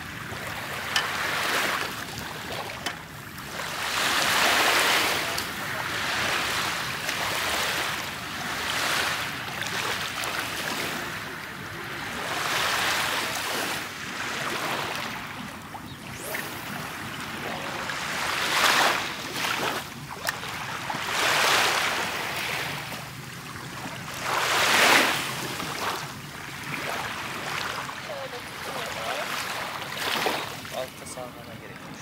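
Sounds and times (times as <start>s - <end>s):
waves washing on pebble beach: 0.0s - 15.4s, 16.2s - 23.2s, 23.9s - 30.9s.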